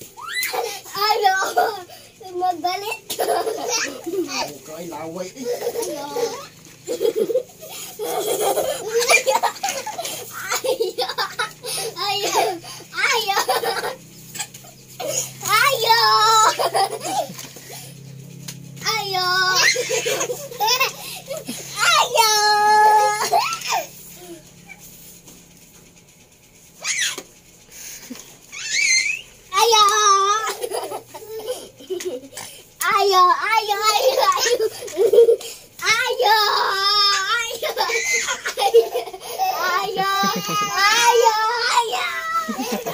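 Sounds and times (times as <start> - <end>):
young child laughing: 0.2 - 1.9, 3.1 - 4.6, 5.4 - 15.3, 16.2 - 17.5, 19.5 - 21.9, 30.3 - 32.5, 33.8 - 36.5, 37.4 - 42.9
baby squealing: 26.8 - 27.2, 28.5 - 29.3, 37.7 - 38.5.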